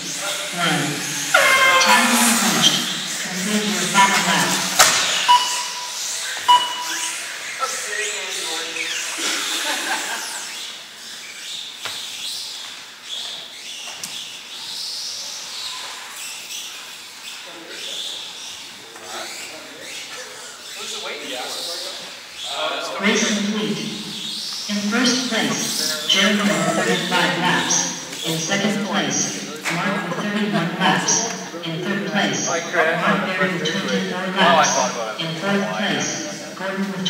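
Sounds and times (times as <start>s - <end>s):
voices in large hall: 0.0s - 37.0s
short beeps: 5.2s - 7.1s.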